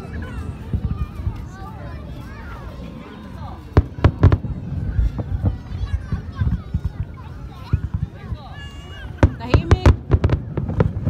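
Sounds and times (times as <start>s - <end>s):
fireworks bangs and crackles: 0.0s - 11.0s.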